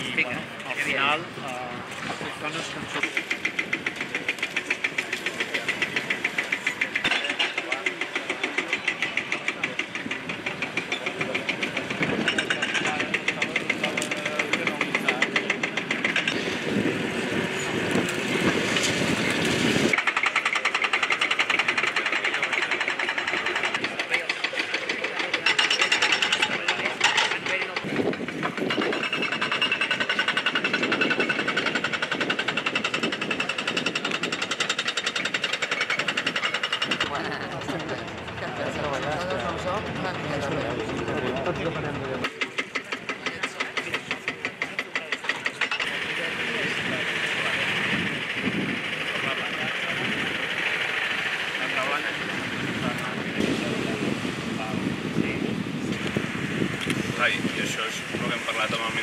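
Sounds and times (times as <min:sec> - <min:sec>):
diesel engine knocking: 0:00.0 - 0:59.0
indistinct voices: 0:00.0 - 0:59.0.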